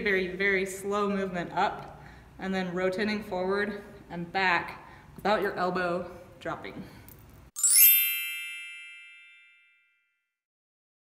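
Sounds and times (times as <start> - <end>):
chime sound effect: 7.6 - 10.3.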